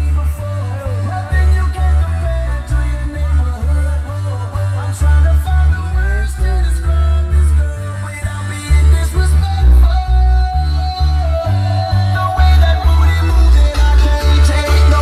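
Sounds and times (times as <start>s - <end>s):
heavy pulsing bass line: 0.0s - 15.0s
loud music with singing: 0.0s - 15.0s.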